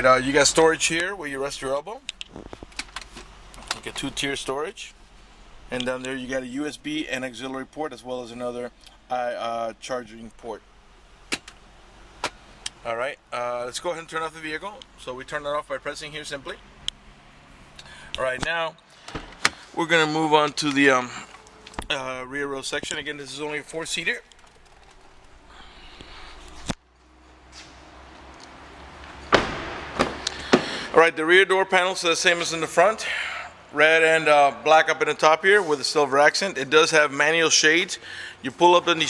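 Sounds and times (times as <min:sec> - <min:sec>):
man talking: 0:00.0 - 0:02.0, 0:03.7 - 0:05.0, 0:05.7 - 0:10.6, 0:12.8 - 0:16.6, 0:18.2 - 0:18.8, 0:19.8 - 0:24.3, 0:30.9 - 0:39.0
faint background hum: 0:00.0 - 0:39.0
car door opening clunk: 0:29.3 - 0:30.8.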